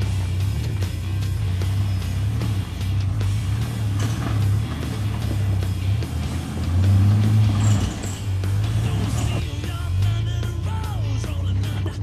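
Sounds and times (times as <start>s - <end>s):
off-road vehicle engine running: 0.0s - 12.0s
rock music with guitar: 0.0s - 12.0s.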